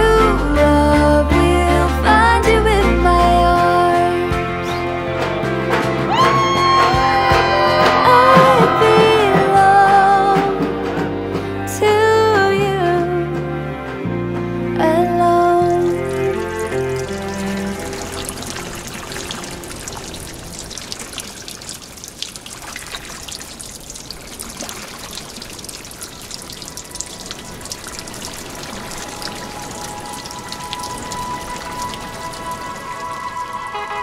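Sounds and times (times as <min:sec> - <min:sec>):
soft music: 0:00.0 - 0:20.8, 0:26.8 - 0:34.0
water splashing from a pot: 0:15.6 - 0:33.7.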